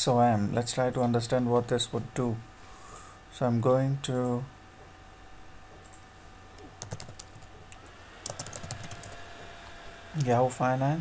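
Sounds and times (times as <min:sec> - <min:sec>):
typing on computer keyboard: 0:06.8 - 0:07.5, 0:08.2 - 0:09.2.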